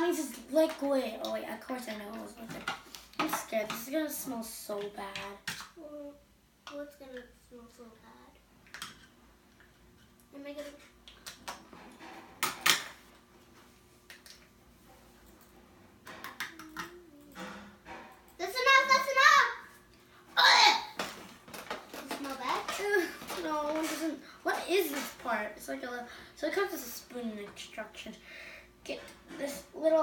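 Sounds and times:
girls' voices: 0:18.4 - 0:19.7.

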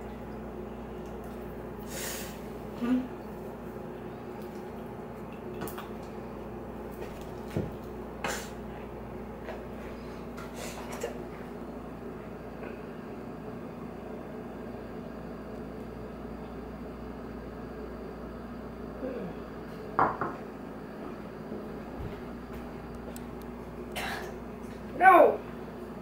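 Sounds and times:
low room hum: 0:00.0 - 0:26.0.

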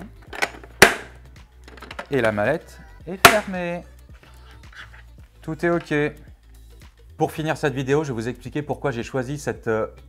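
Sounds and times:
plastic case latches clicking shut: 0:00.2 - 0:02.3.

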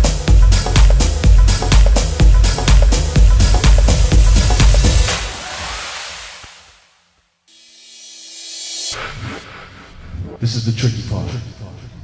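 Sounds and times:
kick drum beat: 0:00.0 - 0:05.1
noisy wash: 0:02.8 - 0:07.0
rising white noise sweep: 0:03.0 - 0:10.2.

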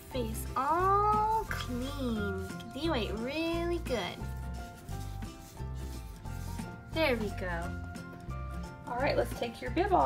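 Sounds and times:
soft music with low beat: 0:00.0 - 0:10.0
wipe rubbing doll's face: 0:00.4 - 0:07.4.

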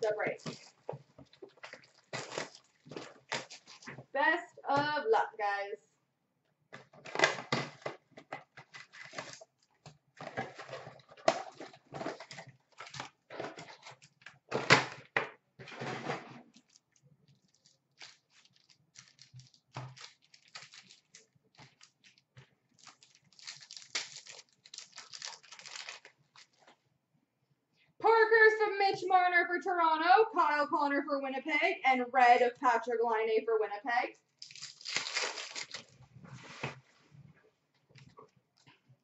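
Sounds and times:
foil wrappers crinkling and tearing: 0:01.5 - 0:03.9, 0:08.7 - 0:09.7, 0:16.5 - 0:26.6, 0:34.4 - 0:36.0.

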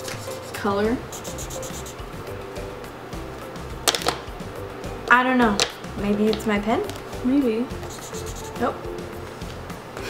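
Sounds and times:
marker scribbling on paper: 0:00.0 - 0:02.1, 0:07.8 - 0:08.7
soft background music: 0:00.0 - 0:10.0.

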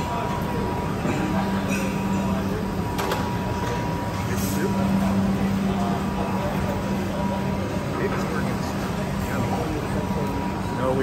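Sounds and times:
faint chatter of diners: 0:00.0 - 0:11.0
fans and ventilation humming: 0:00.0 - 0:11.0.

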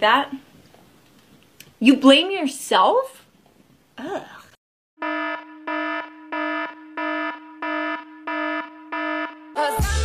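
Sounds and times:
pulsing electronic alarm: 0:05.0 - 0:09.8.

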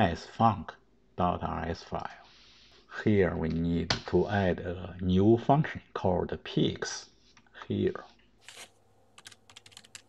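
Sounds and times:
keyboard typing: 0:08.5 - 0:10.0.

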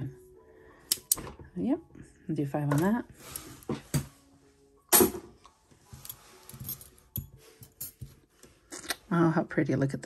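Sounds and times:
metal bangles clinking: 0:05.9 - 0:08.2.

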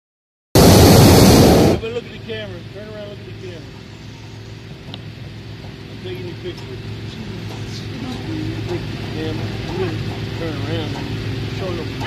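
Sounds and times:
propane burner blast: 0:00.6 - 0:02.1.

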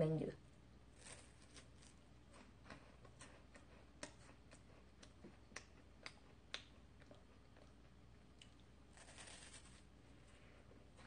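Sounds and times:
wafer cookie crunching: 0:00.8 - 0:11.0.

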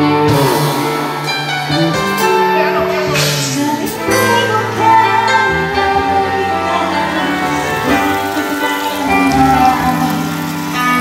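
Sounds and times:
drums: 0:00.0 - 0:11.0
electric guitar: 0:00.0 - 0:11.0
keyboard: 0:00.0 - 0:11.0.

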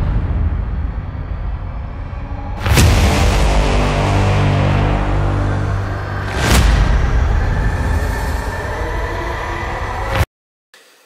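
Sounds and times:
low rumbling drone: 0:00.0 - 0:10.2.

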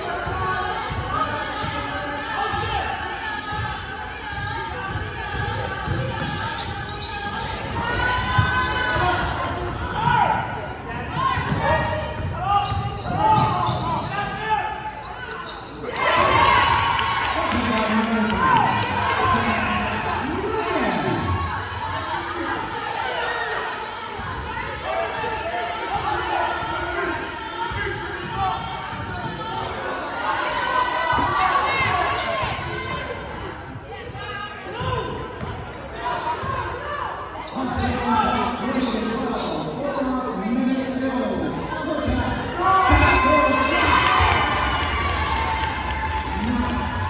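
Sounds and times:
spectators talking and calling out: 0:00.0 - 0:47.0.

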